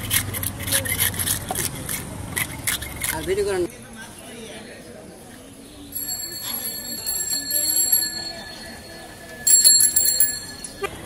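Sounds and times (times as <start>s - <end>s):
small metal bell ringing: 5.9s - 11.0s.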